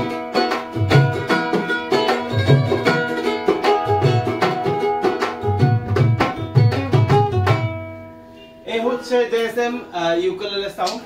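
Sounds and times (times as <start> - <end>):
hand drum beating: 0.0 - 7.9
ukulele strumming: 0.0 - 8.5
man talking: 8.6 - 11.0.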